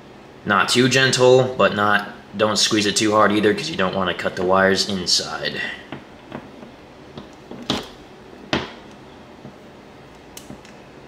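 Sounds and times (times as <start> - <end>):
wire stripper clicks: 10.1 - 10.8.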